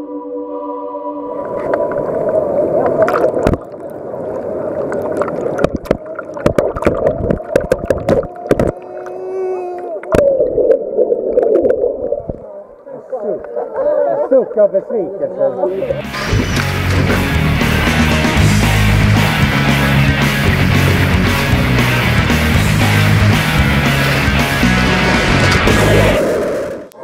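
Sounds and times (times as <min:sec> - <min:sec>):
muffled underwater splashing: 0:01.4 - 0:13.6.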